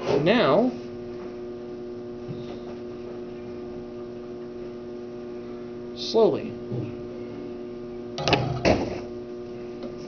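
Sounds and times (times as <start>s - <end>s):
mains hum: 0.0s - 10.0s.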